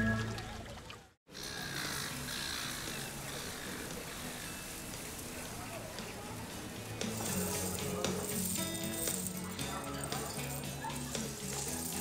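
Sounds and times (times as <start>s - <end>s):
faint indistinct voices: 0.3s - 12.0s
soft background music: 1.9s - 12.0s.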